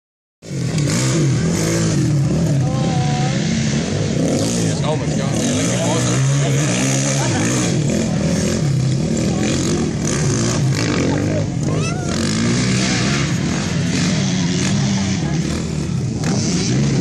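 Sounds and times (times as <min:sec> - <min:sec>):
dirt bike engines revving: 0:00.4 - 0:17.0.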